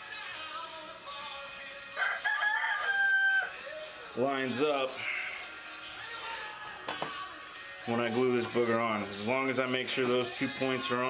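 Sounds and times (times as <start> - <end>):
rooster crowing: 1.9 - 3.8.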